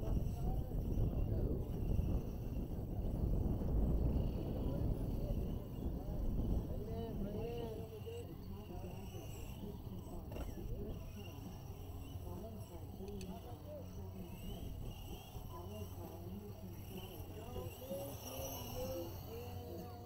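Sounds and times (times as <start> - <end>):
rc truck motors whining: 0.0 - 20.0.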